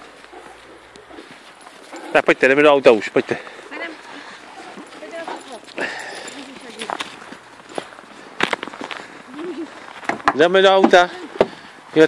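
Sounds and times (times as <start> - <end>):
footsteps on snow: 0.0 - 10.1.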